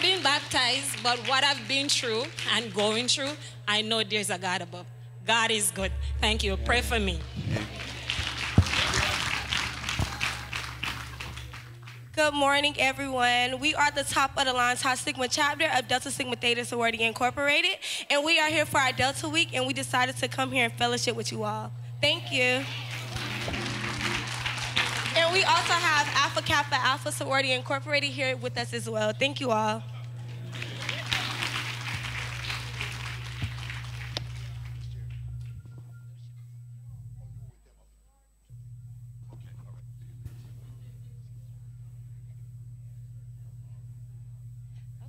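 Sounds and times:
congregation applauding: 0.0s - 3.6s, 7.2s - 12.2s, 22.6s - 26.7s, 29.9s - 35.6s
crowd clapping: 0.0s - 3.6s, 7.0s - 12.2s, 22.6s - 26.7s, 29.8s - 35.9s
steady low hum: 0.0s - 45.0s.

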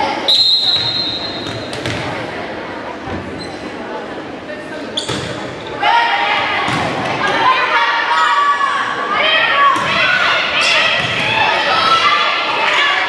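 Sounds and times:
crowd chatter in a gym: 0.0s - 13.0s
referee's whistle blast: 0.3s - 1.4s.

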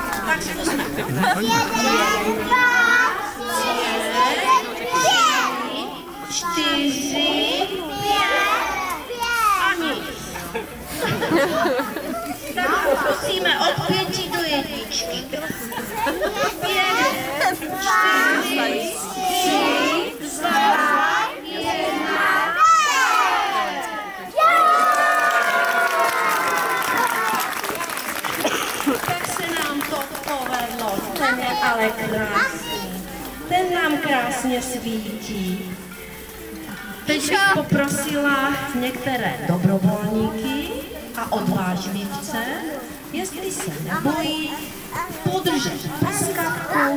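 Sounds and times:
young children chattering: 0.0s - 24.9s, 26.0s - 46.9s
children shouting together: 1.1s - 6.7s, 7.4s - 9.7s, 16.1s - 28.0s.

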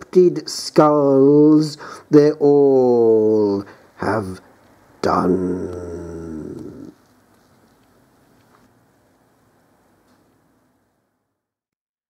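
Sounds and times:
man's voice holding low tone: 0.0s - 7.0s
faint room tone: 0.0s - 11.7s.

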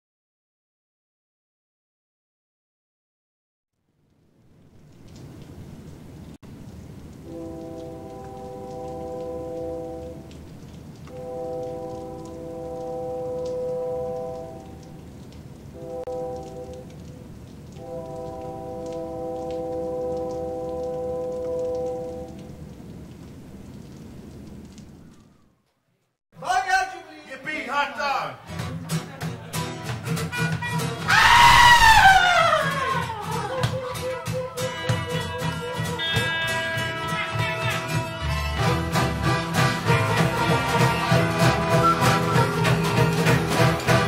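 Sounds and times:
faint crackles: 3.9s - 25.9s
low rumble of train: 7.0s - 14.6s
train horn chord: 7.2s - 10.4s, 11.1s - 14.9s, 15.8s - 17.0s, 17.8s - 22.4s, 34.7s - 44.0s.

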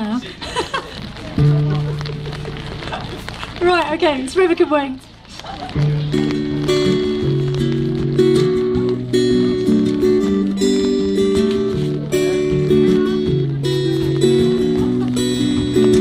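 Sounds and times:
strummed acoustic guitar chords: 1.4s - 4.7s, 5.6s - 16.0s
live band playing: 6.0s - 16.0s.

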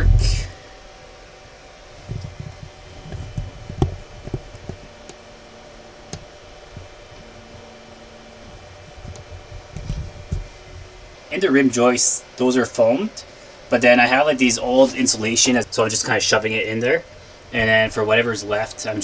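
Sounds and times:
low room hum: 0.0s - 19.0s.

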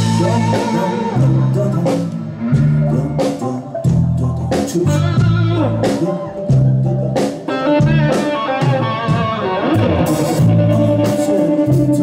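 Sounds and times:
bass notes: 0.0s - 12.0s
drum kit: 0.0s - 12.0s
electric guitar: 0.0s - 12.0s.

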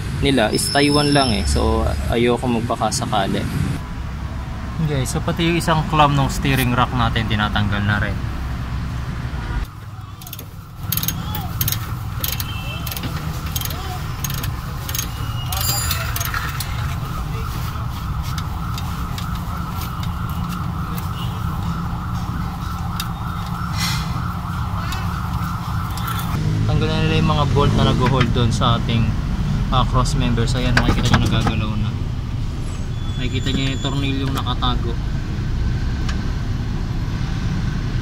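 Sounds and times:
metallic clinks of hand tools: 13.6s - 16.6s.

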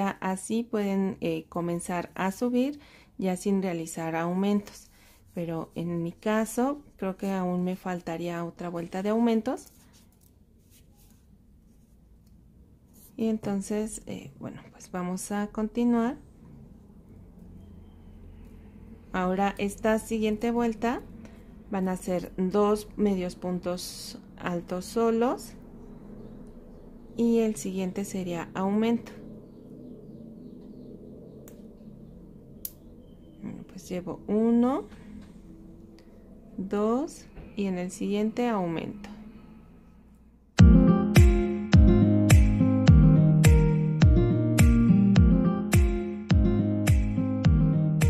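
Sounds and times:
low room hum: 0.0s - 40.6s.

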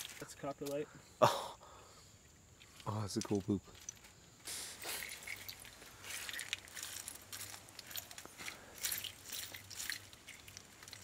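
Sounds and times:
pebbles rattling in a sifting screen: 4.8s - 11.0s.

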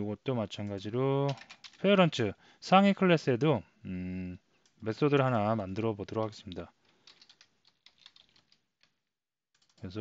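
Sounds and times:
computer keyboard typing: 1.3s - 1.9s, 5.8s - 8.6s, 9.6s - 9.9s.

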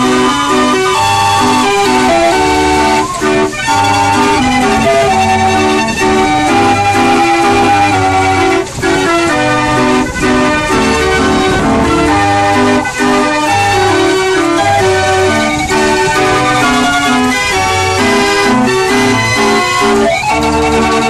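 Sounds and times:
street organ playing a tune: 0.0s - 21.0s.

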